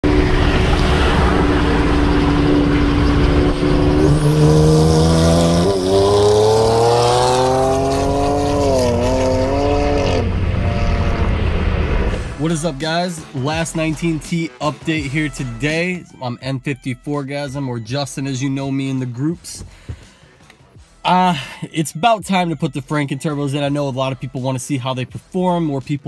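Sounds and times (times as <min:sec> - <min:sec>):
car engine accelerating hard: 0:00.0 - 0:12.5
wind and road noise: 0:00.0 - 0:13.0.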